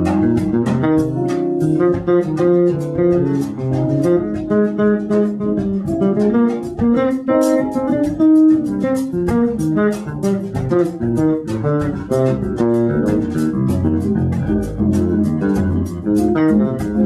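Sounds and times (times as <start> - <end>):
electric bass line: 0.0 - 17.0
guitar notes: 0.0 - 17.0.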